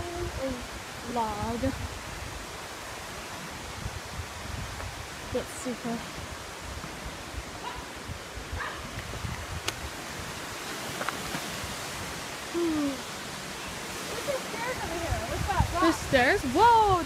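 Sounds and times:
waterfall rushing: 0.0s - 17.0s
wind buffeting microphone: 0.0s - 17.0s.

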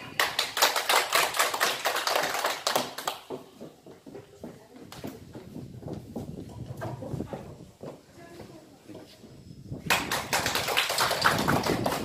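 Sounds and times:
audience clapping: 0.0s - 3.4s, 9.9s - 12.0s.

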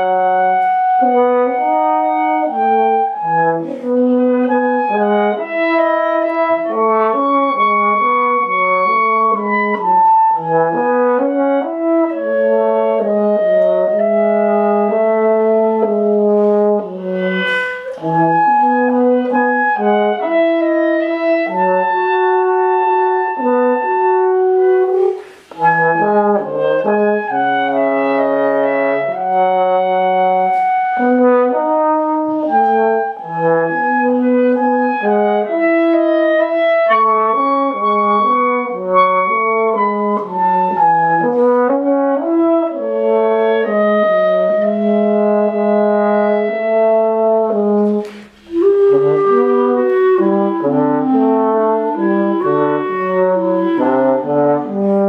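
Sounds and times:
clarinet: 0.0s - 55.0s
french horn: 0.0s - 55.0s.

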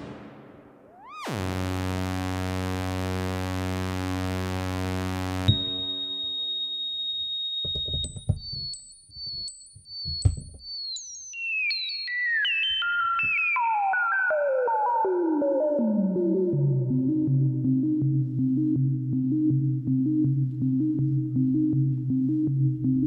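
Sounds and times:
buzzy low synthesizer tone: 1.2s - 6.6s
high whistle-like synth tone: 5.5s - 7.7s.

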